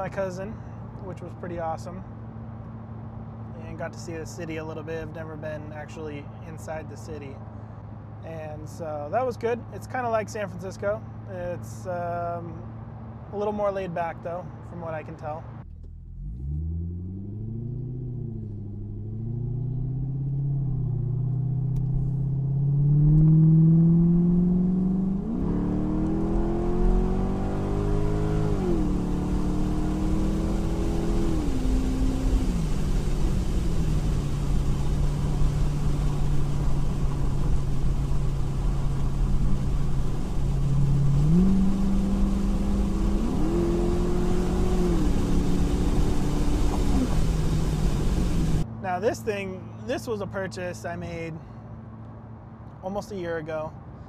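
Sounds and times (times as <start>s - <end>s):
road noise: 0.0s - 54.0s
car engine accelerating: 15.6s - 49.4s.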